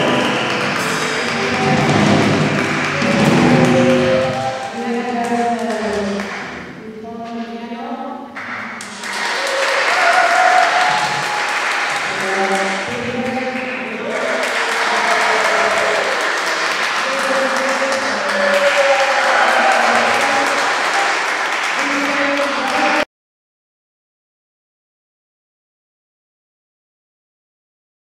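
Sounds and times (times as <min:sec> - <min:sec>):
audience applauding: 0:00.0 - 0:06.6, 0:08.4 - 0:23.1.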